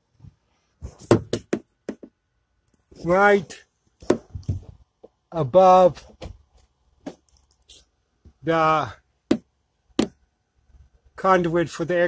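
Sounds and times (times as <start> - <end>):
short sharp knocks: 9.3 - 10.2.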